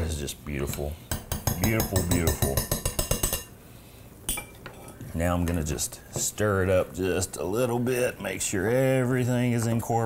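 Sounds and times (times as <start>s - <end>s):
metal masher clinking on glass bowl: 1.1s - 3.5s.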